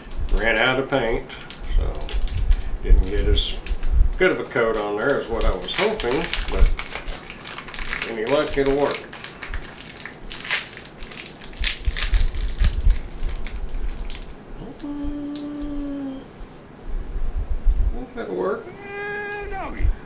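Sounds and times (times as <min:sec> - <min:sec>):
tape peeling and crumpling: 0:00.0 - 0:15.9
short vocal sounds: 0:14.6 - 0:16.4, 0:17.9 - 0:20.0.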